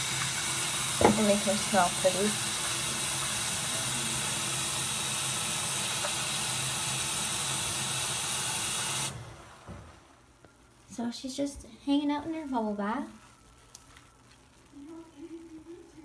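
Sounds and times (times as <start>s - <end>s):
faucet running into basin: 0.0s - 9.3s.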